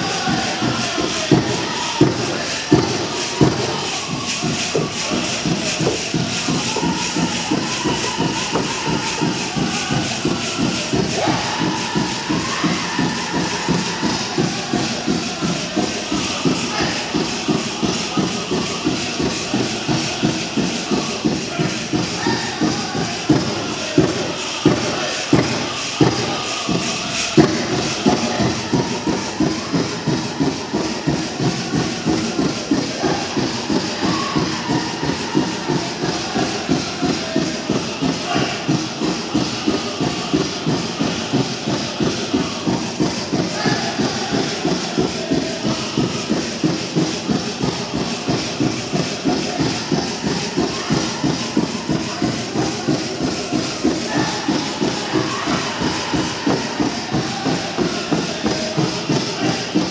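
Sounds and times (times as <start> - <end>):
group singing: 0.0 - 59.9
steady drumbeat: 0.0 - 59.9.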